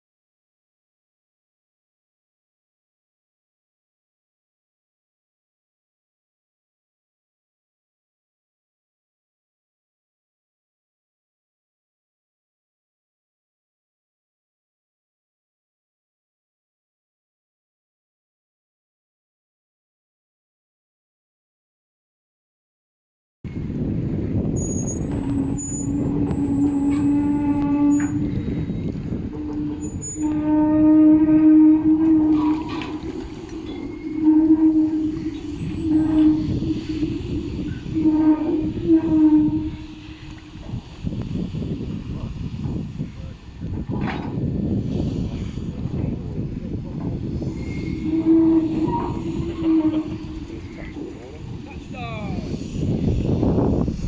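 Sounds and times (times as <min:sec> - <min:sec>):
cradle rolling on rails: 0:23.5 - 0:51.9
wind rumble on microphone: 0:23.5 - 0:54.0
metallic squeal: 0:24.6 - 0:40.8, 0:47.2 - 0:53.3.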